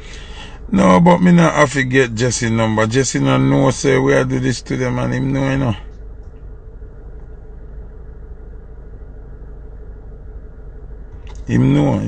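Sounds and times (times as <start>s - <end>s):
faint steady hum: 0.0s - 12.0s
steady low rumble: 0.0s - 12.0s.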